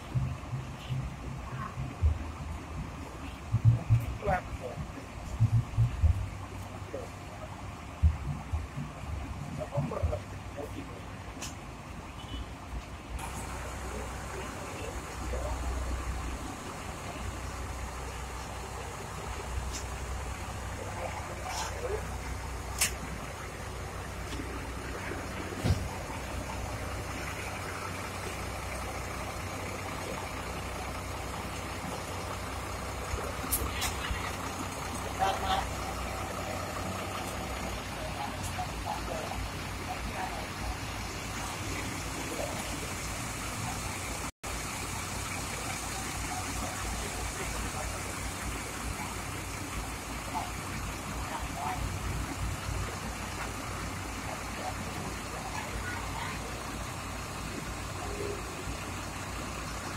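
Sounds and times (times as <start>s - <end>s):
bus engines rumbling: 0.0s - 59.9s
people's voices: 0.0s - 59.9s.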